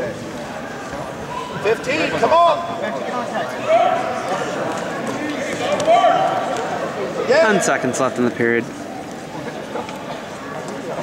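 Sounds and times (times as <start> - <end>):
people yelling: 0.7 - 7.6.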